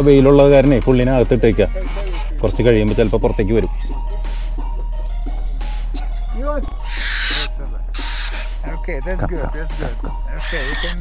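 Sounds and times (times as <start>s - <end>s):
barn owl screeching: 6.7s - 8.6s, 10.3s - 11.0s.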